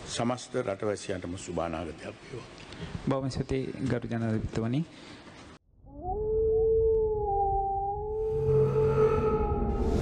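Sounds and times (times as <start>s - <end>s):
low hum: 5.7s - 10.0s
wolf howl: 5.9s - 10.0s.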